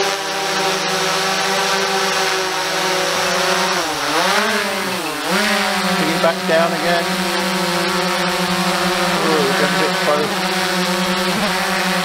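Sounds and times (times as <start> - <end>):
drone propellers whining: 0.0 - 12.0.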